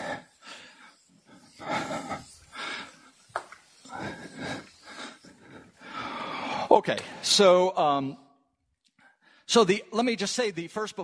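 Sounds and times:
eraser wiping a chalkboard: 0.0s - 5.2s.

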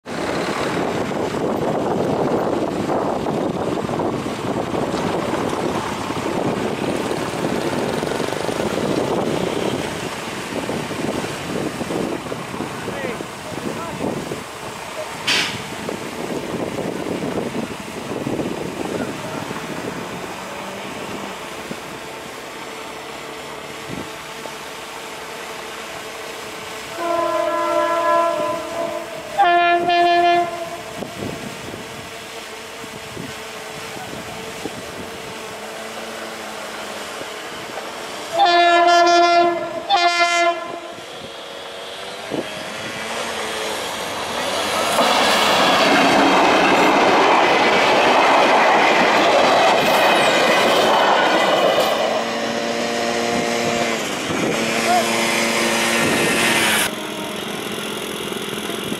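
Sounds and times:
train passing with rumble: 0.0s - 58.9s
train horn blasts: 26.9s - 31.1s, 38.3s - 41.1s, 52.1s - 57.5s.

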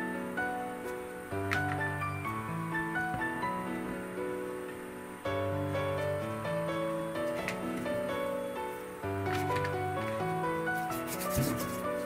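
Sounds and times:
background music melody: 0.0s - 12.0s
clay rubbing on plastic mat: 9.3s - 12.0s.

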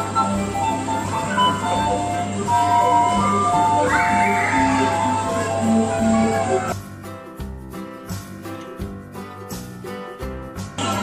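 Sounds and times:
electronic jingle: 1.3s - 6.8s.

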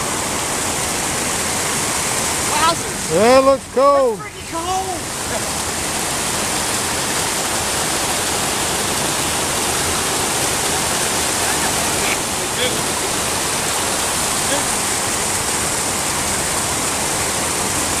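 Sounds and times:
water rushing over rocks: 0.0s - 18.0s.

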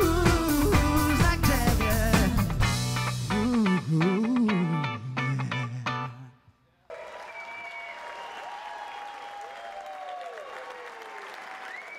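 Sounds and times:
audience applauding: 6.9s - 11.9s
people whooping: 6.9s - 11.9s
gliding whistle: 7.2s - 8.5s.

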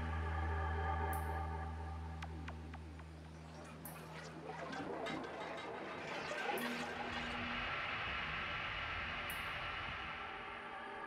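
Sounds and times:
sustained synth tones: 0.0s - 11.0s.

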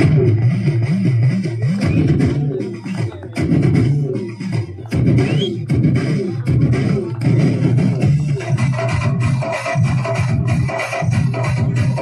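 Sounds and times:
music with rhythmic beat: 0.0s - 12.0s.

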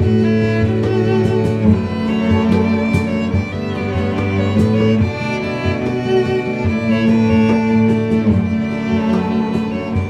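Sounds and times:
band accompaniment: 0.0s - 10.0s
violin playing long notes: 0.0s - 10.0s.

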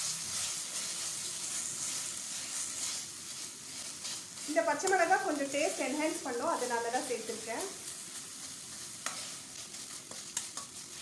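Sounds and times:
paste sizzling in oil: 0.0s - 11.0s
steel spoon stirring: 0.0s - 11.0s.

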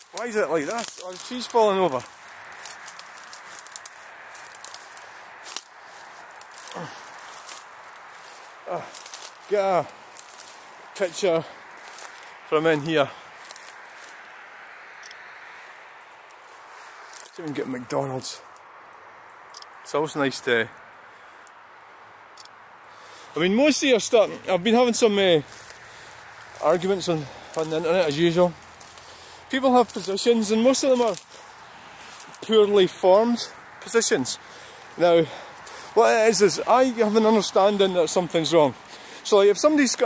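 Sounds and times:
man's voice murmuring: 0.0s - 2.1s, 6.6s - 7.1s, 8.6s - 10.0s, 23.4s - 25.6s, 26.6s - 28.6s, 32.4s - 40.0s
twig snap: 0.0s - 10.8s, 13.4s - 14.2s
footsteps in leaf litter: 0.0s - 14.5s, 15.4s - 18.4s, 23.1s - 40.0s
background hiss: 0.0s - 40.0s
small sharp clicks: 22.4s - 22.6s.

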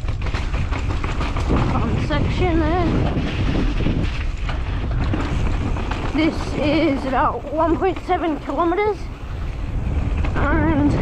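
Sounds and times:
bike rattling: 0.0s - 11.0s
tyres rolling on dirt: 0.0s - 11.0s
wind rushing over microphone: 0.0s - 11.0s.

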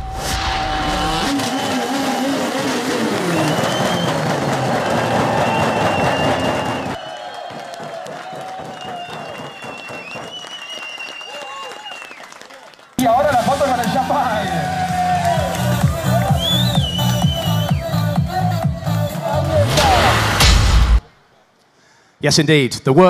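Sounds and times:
rally car engine running: 0.8s - 7.0s
people shouting and cheering: 0.8s - 20.6s
people clapping: 1.4s - 18.4s.

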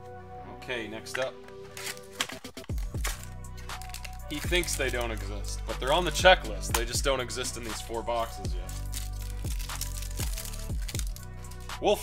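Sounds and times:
man talking: 0.4s - 1.4s, 4.2s - 8.7s, 11.8s - 12.0s
foil card pack tearing: 1.6s - 5.3s, 8.6s - 11.8s
music with deep bass hits: 2.4s - 11.8s.

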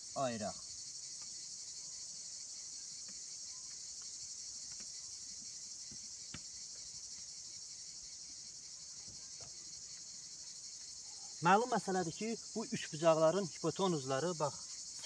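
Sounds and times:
insects chirping: 0.0s - 15.0s.

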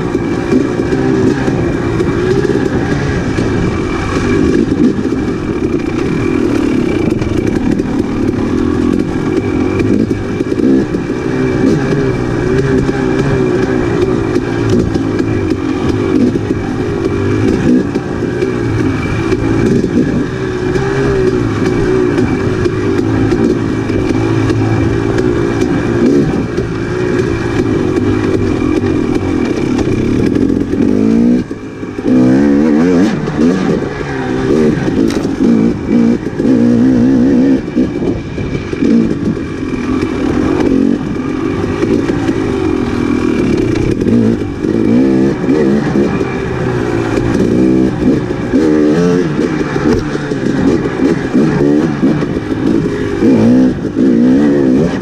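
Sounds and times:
two-stroke motorcycle engine revving: 0.0s - 55.0s.

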